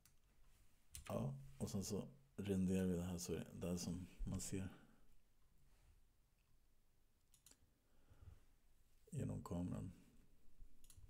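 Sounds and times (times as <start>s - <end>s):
computer mouse clicks: 7.3s - 7.6s, 10.8s - 11.0s.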